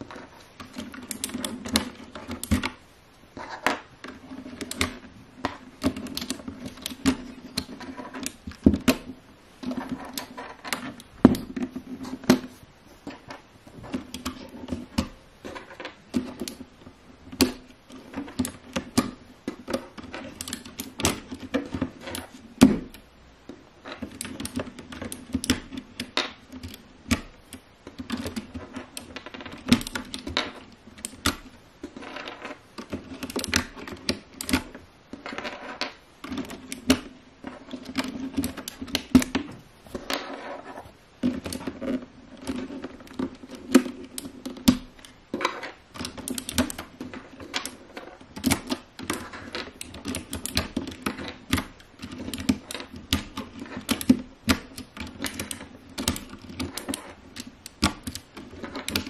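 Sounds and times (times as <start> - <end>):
keycaps clicking and rattling: 17.3 - 23.0, 23.9 - 35.6, 36.2 - 39.5, 41.2 - 59.0
plastic keycaps clicking: 45.9 - 59.0.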